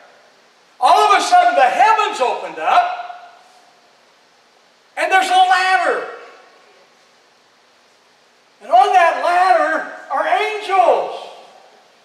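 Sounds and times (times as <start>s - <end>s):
faint room hiss: 0.0s - 12.0s
man speaking: 0.8s - 3.2s, 5.0s - 6.2s, 8.6s - 11.6s.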